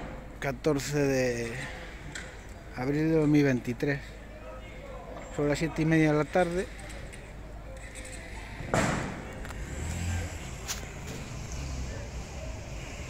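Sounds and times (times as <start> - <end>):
low traffic rumble: 0.0 - 13.0
loud bang: 8.7 - 9.3.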